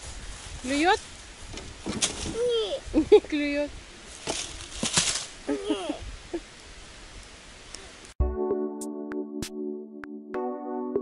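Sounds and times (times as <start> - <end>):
stick dropping onto dry leaves: 1.0 - 2.5, 4.1 - 5.4.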